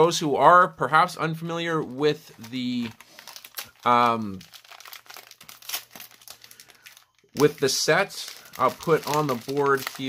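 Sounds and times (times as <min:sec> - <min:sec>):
foil wrapper crinkling and tearing: 0:02.3 - 0:10.0.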